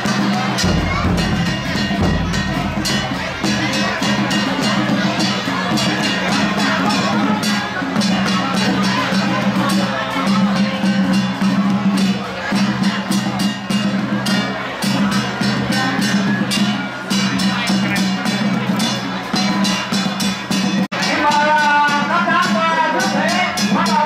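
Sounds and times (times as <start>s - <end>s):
crowd voices: 0.0s - 24.0s
drum and percussion music: 0.0s - 24.0s.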